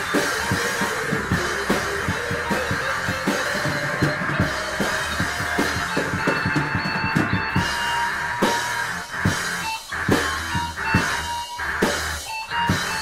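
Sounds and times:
drum kit beat: 0.0s - 13.0s
held guitar notes: 0.0s - 13.0s.

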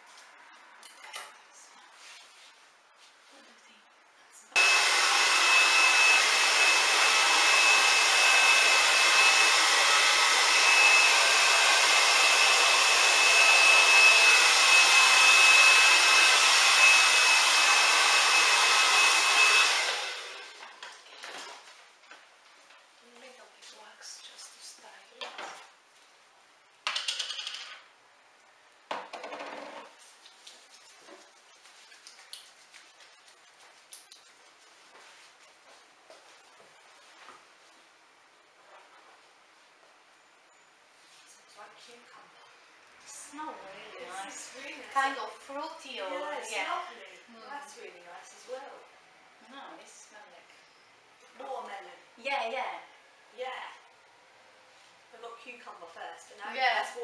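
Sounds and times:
hair dryer blowing: 4.6s - 20.8s.

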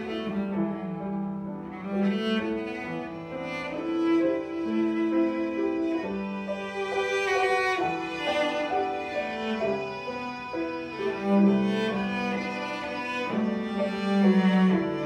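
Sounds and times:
cello and violin bowing: 0.0s - 15.0s
grand piano accompaniment: 0.0s - 15.0s.

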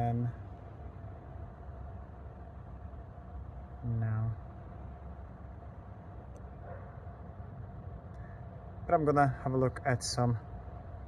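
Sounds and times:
low rumble and hiss: 0.0s - 11.0s
thin steady hum: 0.0s - 11.0s.

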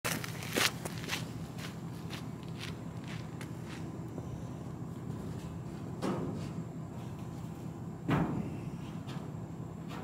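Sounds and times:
footsteps on gravel: 0.1s - 4.3s.

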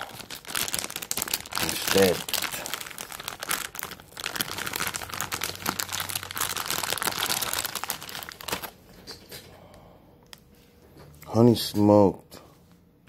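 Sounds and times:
plastic package crinkling: 0.0s - 8.9s.

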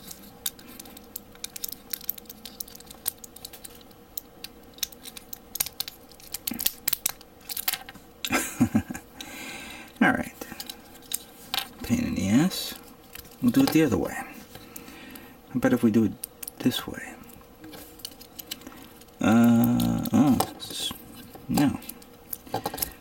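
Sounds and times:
plastic parts clicking: 0.0s - 7.9s
person muttering: 19.2s - 20.5s.

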